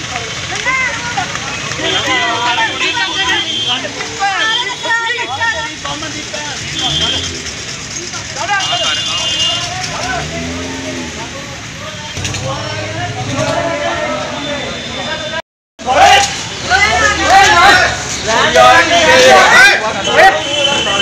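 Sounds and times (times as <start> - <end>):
people shouting and yelling: 0.0 - 21.0
road traffic: 0.0 - 21.0.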